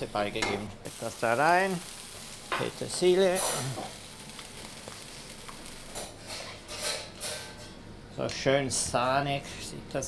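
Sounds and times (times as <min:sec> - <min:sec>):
sauce sloshing and hissing in pan: 0:00.8 - 0:02.5, 0:03.1 - 0:06.4.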